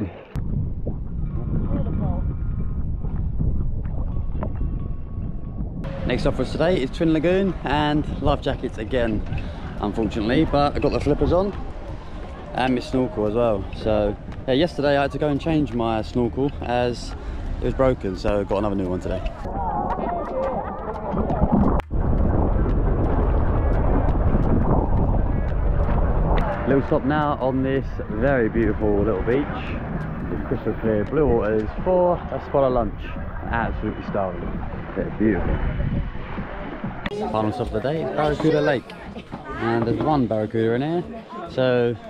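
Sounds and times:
boat engine rumble: 0.0 - 41.5
wind buffeting microphone: 0.0 - 42.0.

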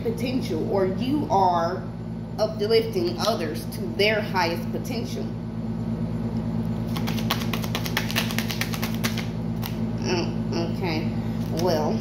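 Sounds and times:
steady low hum: 0.0 - 12.0
cards being shuffled: 6.9 - 9.8.

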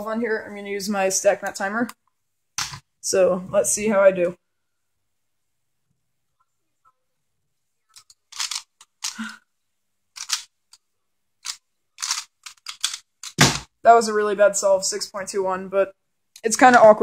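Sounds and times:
clicky plastic puzzle turning: 7.9 - 9.4, 10.2 - 10.8, 11.4 - 13.5.

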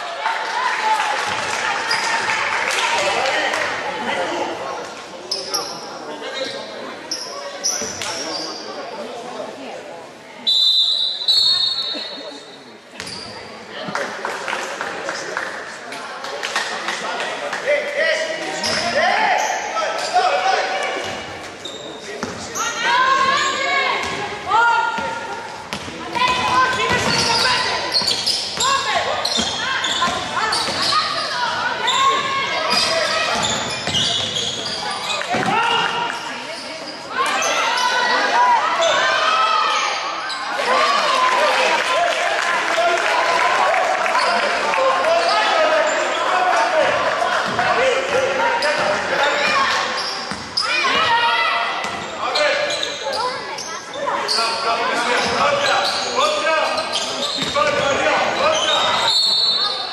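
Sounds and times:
basketball bouncing on court: 25.0 - 28.7, 29.3 - 30.9, 32.2 - 34.7, 50.3 - 50.5, 51.8 - 52.1, 57.4 - 57.9.

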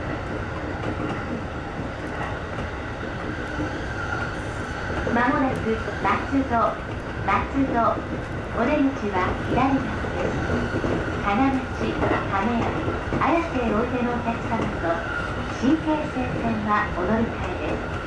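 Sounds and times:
train running on rails: 0.0 - 18.0
recorded train announcement: 5.0 - 18.0.

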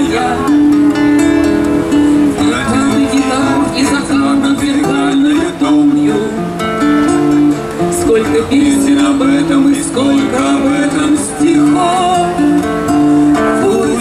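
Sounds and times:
acoustic guitar through pa system: 0.0 - 14.0.

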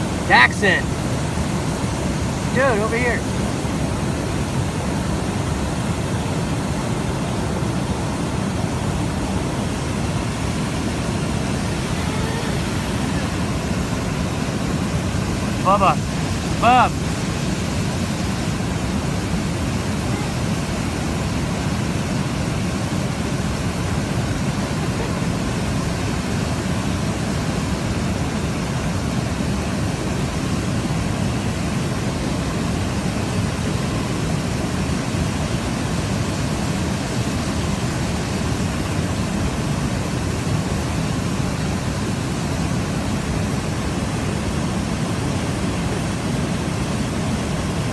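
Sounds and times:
waterfall rushing: 0.0 - 47.9.

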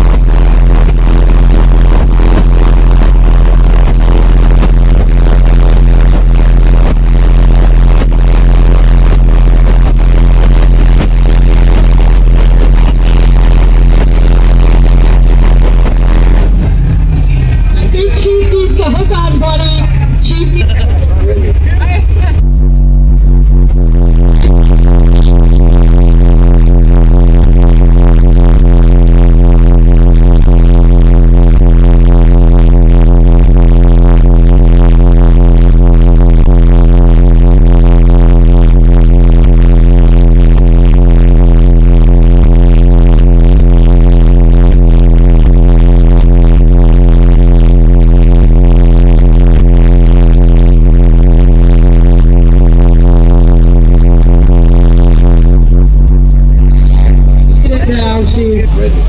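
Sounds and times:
distorted loud bass tone: 0.0 - 59.0.

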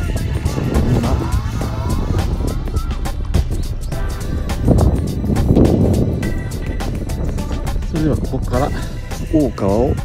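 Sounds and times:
background music: 0.0 - 10.0
wind buffeting microphone: 0.0 - 10.0.

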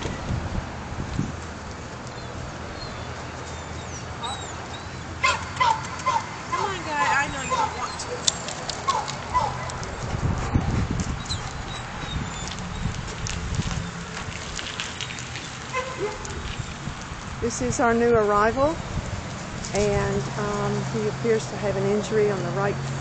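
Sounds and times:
dog whining and yelping: 2.8 - 9.8, 11.2 - 12.8.

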